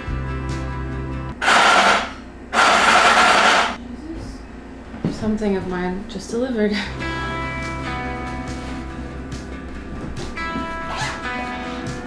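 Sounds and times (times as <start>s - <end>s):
intercom door buzzer: 1.4s - 3.8s.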